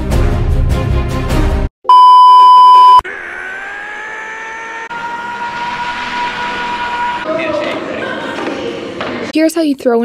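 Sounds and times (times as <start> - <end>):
whining tone climbing in pitch: 1.9 - 6.6.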